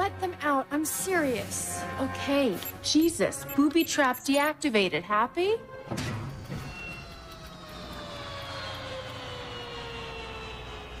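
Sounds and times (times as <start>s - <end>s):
whine sliding down in pitch: 6.5s - 11.0s.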